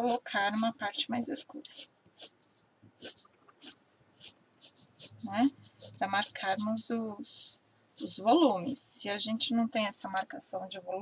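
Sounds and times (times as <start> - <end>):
pencil scratching on paper: 0.0 - 9.5.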